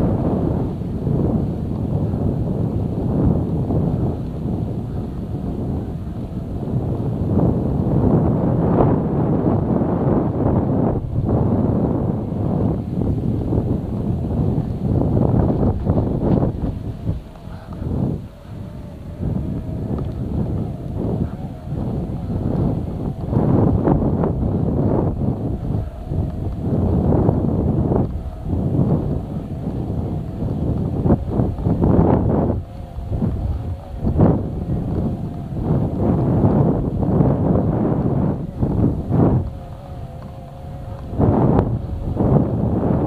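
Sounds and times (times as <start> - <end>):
wind buffeting microphone: 0.0 - 43.0.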